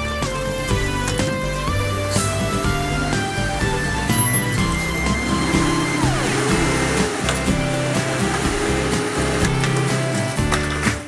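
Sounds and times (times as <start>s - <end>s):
background music: 0.0s - 11.0s
garbage truck engine running: 0.0s - 11.0s
hydraulic lift whining: 0.5s - 11.0s.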